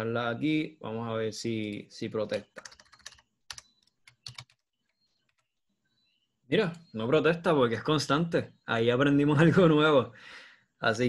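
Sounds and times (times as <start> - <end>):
keyboard typing: 1.6 - 5.6.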